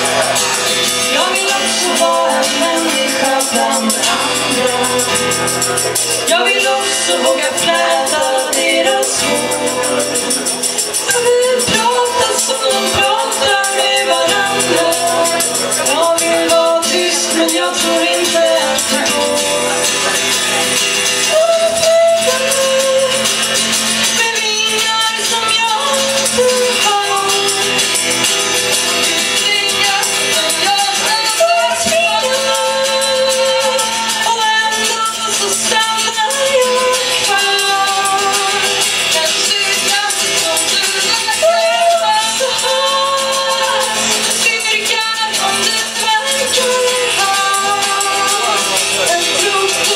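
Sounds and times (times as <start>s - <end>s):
shaker rhythm: 0.0s - 49.9s
strummed acoustic guitar: 0.0s - 49.9s
woman singing: 0.0s - 49.9s
women singing long held notes: 1.1s - 5.2s, 6.3s - 10.1s.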